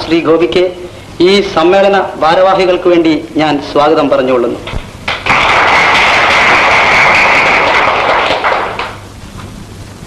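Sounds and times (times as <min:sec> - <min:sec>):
audience applauding: 0:05.0 - 0:09.0.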